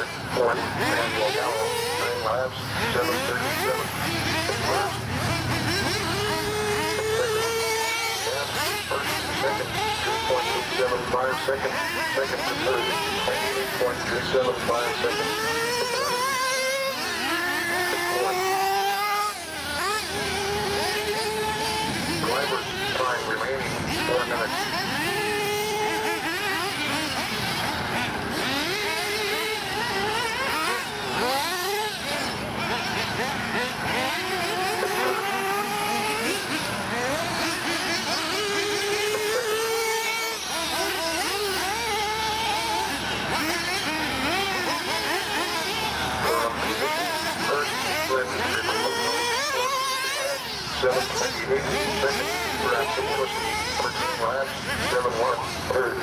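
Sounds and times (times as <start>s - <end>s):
high-revving model car engines: 0.0s - 56.0s.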